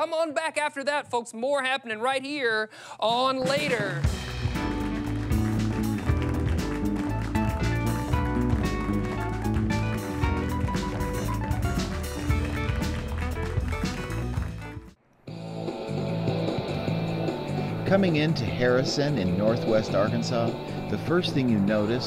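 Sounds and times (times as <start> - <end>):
upbeat band instrumental: 3.0 - 15.0, 16.4 - 22.0
quiet background music: 15.3 - 22.0.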